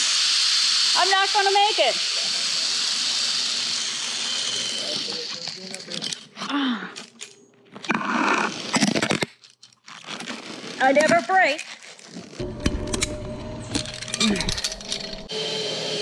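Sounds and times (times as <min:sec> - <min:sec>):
zip-line pulleys hissing on cable: 0:00.0 - 0:06.1
rubbing and crunching on line: 0:03.9 - 0:12.4.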